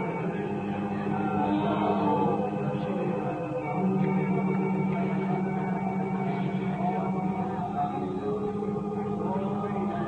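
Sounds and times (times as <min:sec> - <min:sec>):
congregation praying aloud: 0:00.0 - 0:05.8
low held musical chord: 0:00.0 - 0:10.0.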